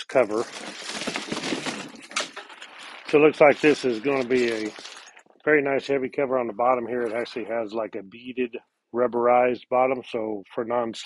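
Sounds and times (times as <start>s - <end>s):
packaging rustling and crinkling: 0.0s - 5.3s
small crackles: 0.0s - 5.5s.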